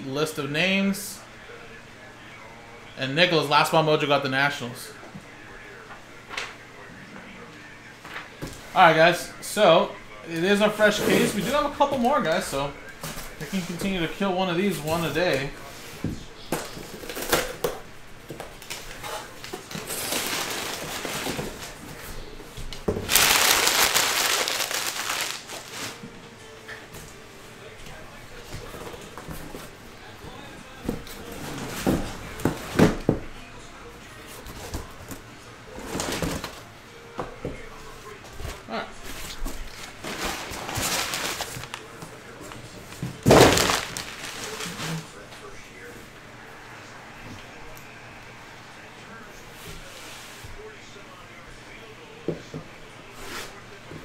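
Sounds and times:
cardboard rustling and scraping: 0:10.7 - 0:14.0, 0:22.9 - 0:26.0, 0:35.8 - 0:36.6, 0:38.4 - 0:45.2
boxes knocking when set down: 0:43.0 - 0:44.5.

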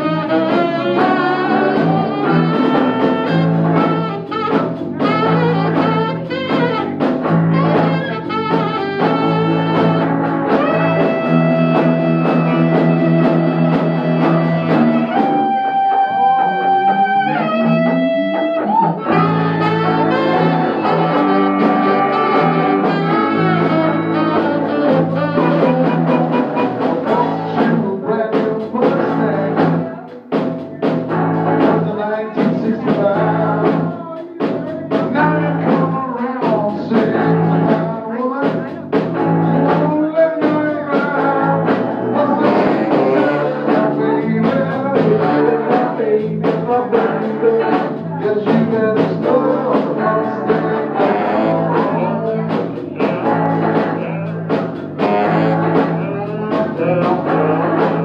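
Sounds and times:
bass guitar: 0:00.0 - 0:58.0
drums: 0:00.0 - 0:58.0
electric guitar: 0:00.0 - 0:58.0.

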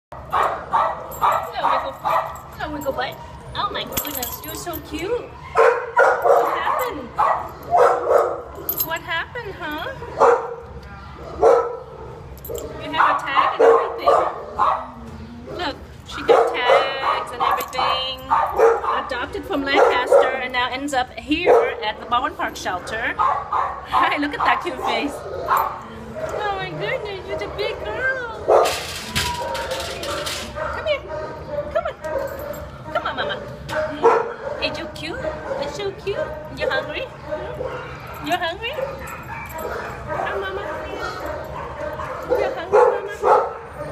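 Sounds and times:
dog barking excitedly: 0:00.1 - 0:02.5, 0:05.5 - 0:08.6, 0:10.0 - 0:10.7, 0:12.6 - 0:15.0, 0:16.2 - 0:20.5, 0:21.4 - 0:21.9, 0:22.9 - 0:32.8, 0:33.6 - 0:43.9.

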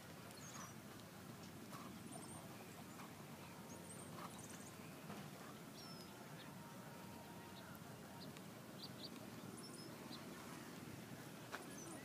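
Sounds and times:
low steady hum: 0:00.0 - 0:12.0
small birds chirping: 0:00.0 - 0:12.0.

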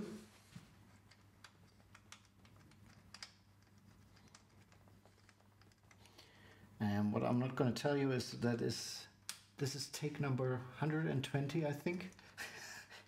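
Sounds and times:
small metal clicks and taps: 0:01.0 - 0:06.2.

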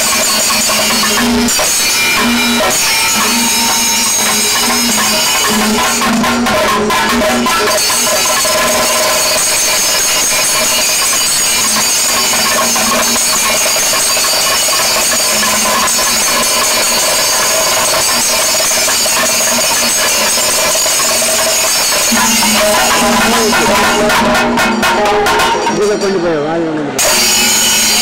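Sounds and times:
drum roll with sticks: 0:00.0 - 0:26.0.

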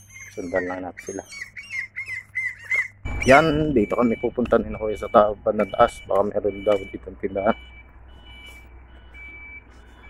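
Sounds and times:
high electronic beeps: 0:00.0 - 0:02.0, 0:03.0 - 0:10.0.

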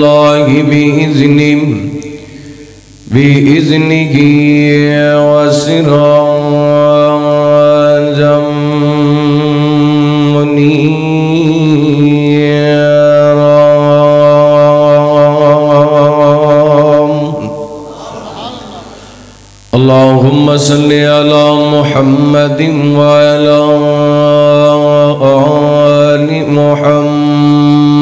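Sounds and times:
man chanting a long note: 0:00.0 - 0:28.0.

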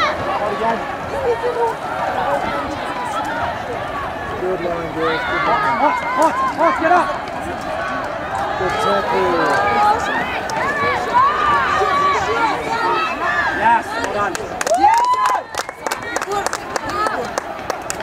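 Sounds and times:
voices shouting and calling: 0:00.0 - 0:18.0.

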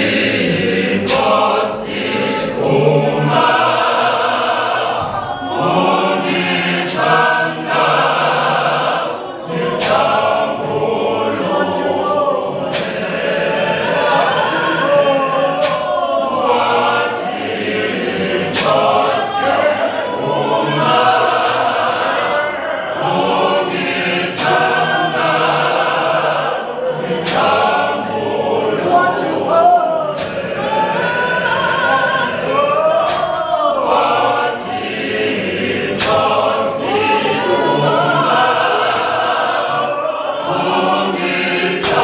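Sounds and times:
gospel choir singing: 0:00.0 - 0:42.0
sharp percussive hits: 0:00.0 - 0:42.0.

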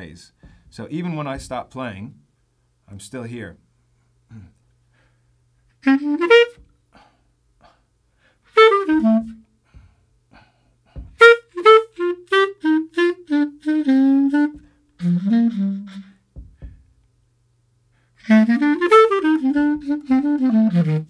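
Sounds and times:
jazz clarinet playing swing phrases: 0:05.7 - 0:06.9, 0:08.4 - 0:09.7, 0:11.0 - 0:17.0, 0:18.0 - 0:21.0.

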